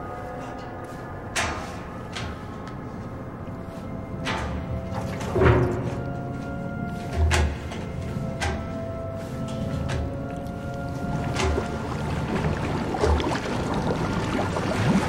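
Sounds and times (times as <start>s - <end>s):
held drone: 0.0s - 15.0s.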